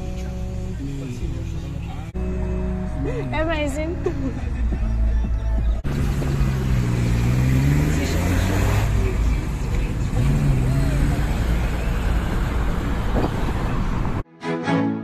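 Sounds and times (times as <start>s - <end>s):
car engine accelerating: 0.0s - 14.2s
street traffic rumble: 0.0s - 14.2s.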